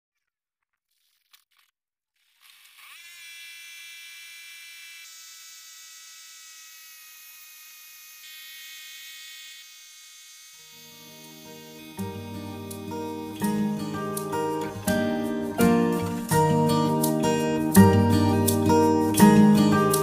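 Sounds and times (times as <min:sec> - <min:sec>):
guitar music: 0:11.2 - 0:20.0.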